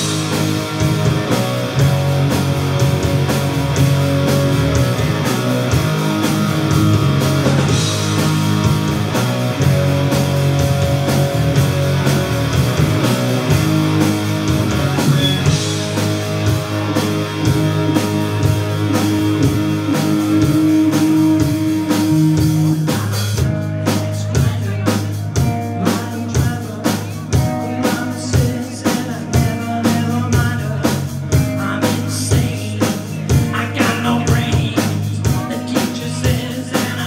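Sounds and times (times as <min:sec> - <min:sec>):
live rock band playing: 0:00.0 - 0:37.0.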